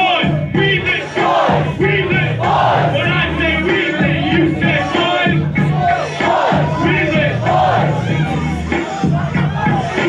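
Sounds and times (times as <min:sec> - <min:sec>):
crowd shouting along: 0:00.0 - 0:10.0
live music with vocals: 0:00.0 - 0:10.0.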